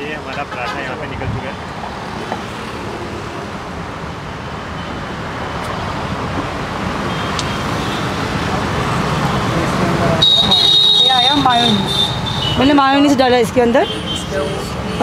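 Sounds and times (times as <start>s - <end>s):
road traffic passing: 0.0s - 15.0s.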